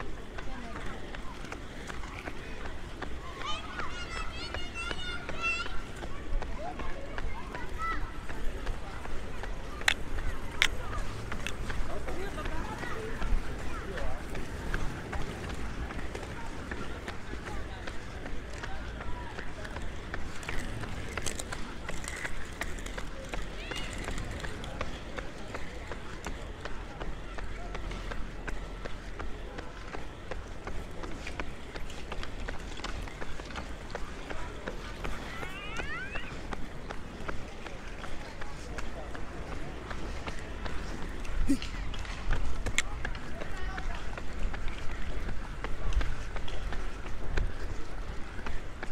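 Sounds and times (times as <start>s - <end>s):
crowd chatter: 0.0s - 48.9s
footsteps on asphalt: 0.0s - 48.9s.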